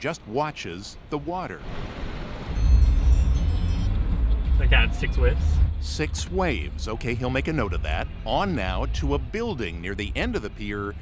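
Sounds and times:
faint high tinkling tones: 2.5s - 4.3s.

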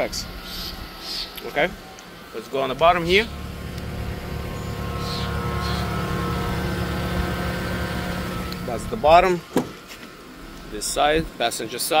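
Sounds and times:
car running steady hum: 0.0s - 11.8s.

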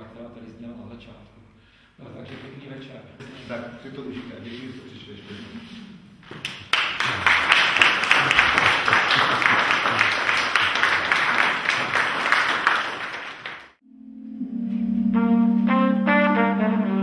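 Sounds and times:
audience applauding: 6.4s - 13.8s.

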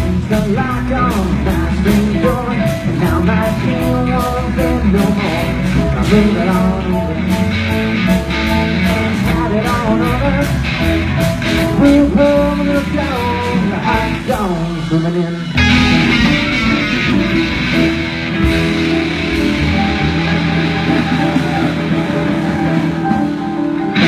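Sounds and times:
blues-rock band playing: 0.0s - 24.0s
guitar note bending downward: 14.8s - 24.0s.

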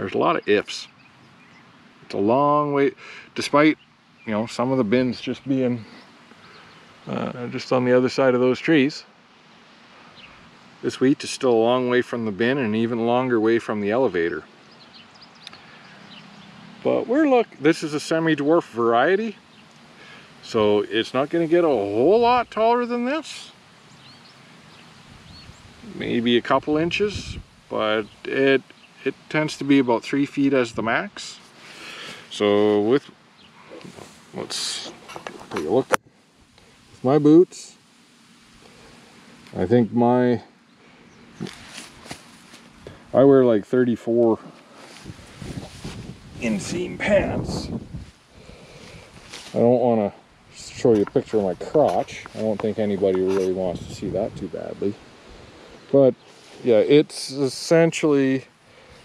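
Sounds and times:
faint bird chirps: 0.0s - 8.8s, 9.9s - 12.9s, 13.5s - 21.0s, 21.7s - 30.7s, 37.6s - 41.8s
rustling of wheat stalks: 15.6s - 59.0s.

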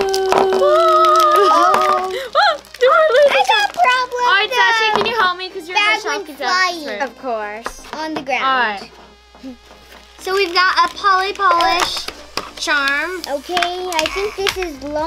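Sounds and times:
girls vocalising: 0.0s - 5.1s, 12.6s - 15.0s.

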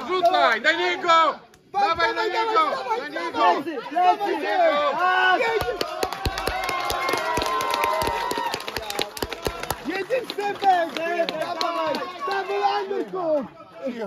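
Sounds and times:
spectators and coaches shouting: 0.0s - 14.0s.

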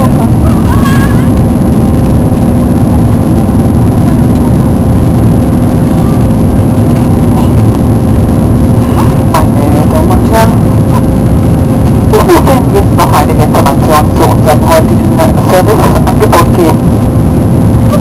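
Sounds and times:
jet engines droning: 0.0s - 18.0s
low hum: 0.0s - 18.0s
rushing air: 0.0s - 18.0s.

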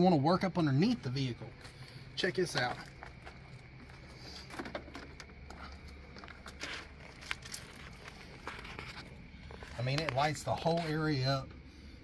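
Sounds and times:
low steady hum: 0.0s - 12.0s
footsteps on gravel: 0.8s - 4.7s, 5.3s - 11.2s.

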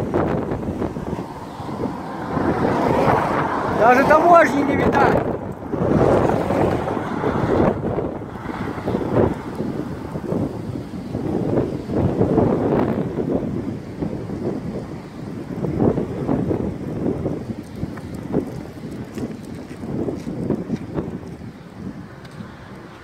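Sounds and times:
strong wind blowing: 0.0s - 23.0s.

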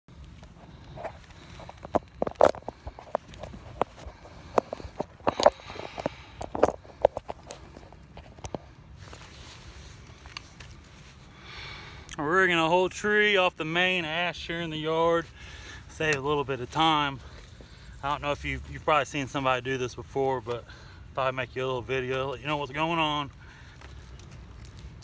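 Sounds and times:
clothing rustle: 0.1s - 11.3s
footsteps: 0.2s - 11.3s, 22.1s - 25.0s.

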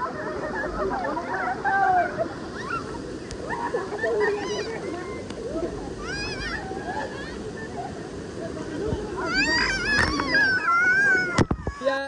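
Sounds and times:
pool water: 0.0s - 12.0s.

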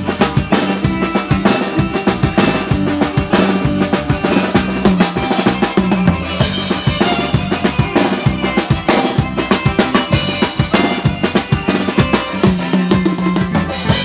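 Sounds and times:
drum kit kick and snare: 0.0s - 14.0s
live band dance music: 0.0s - 14.0s.

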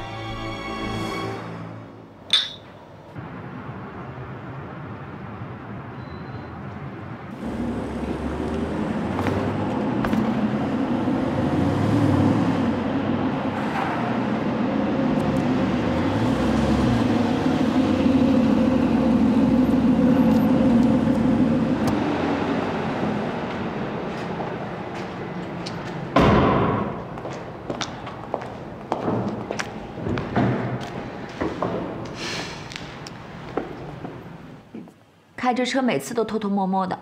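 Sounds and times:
car engine driving: 7.3s - 26.2s.

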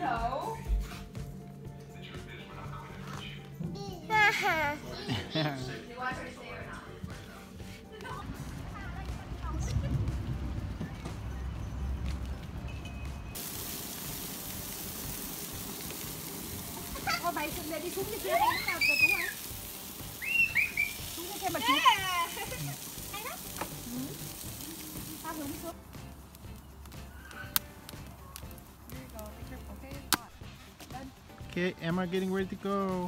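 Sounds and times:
sharp crackles: 13.3s - 30.4s.

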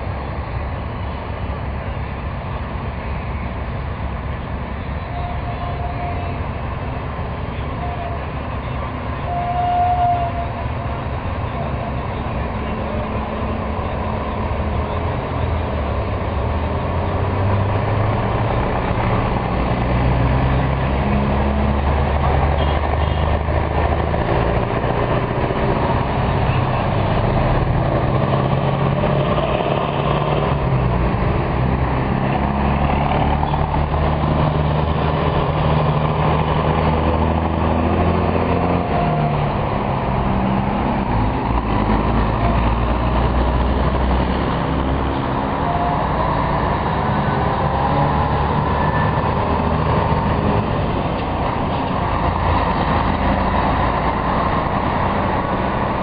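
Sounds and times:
heavy trucks passing slowly: 0.0s - 56.0s.

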